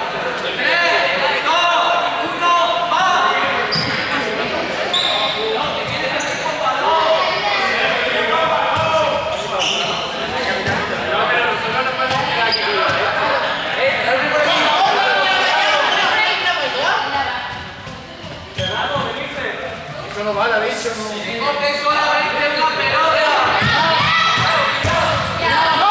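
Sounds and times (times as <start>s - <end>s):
young people talking and calling out: 0.0s - 25.9s
balls bouncing on floor: 10.6s - 10.9s.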